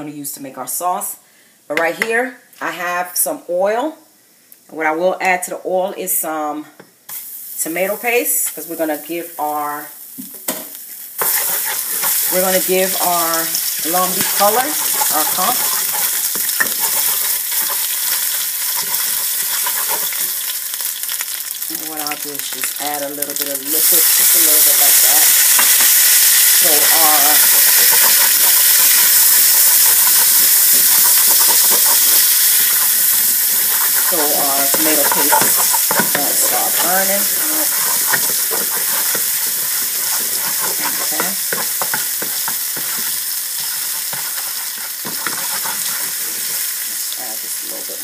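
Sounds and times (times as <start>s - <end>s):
paste sizzling in hot oil: 7.1s - 48.0s
wooden spoon stirring: 11.2s - 20.5s, 26.6s - 46.8s.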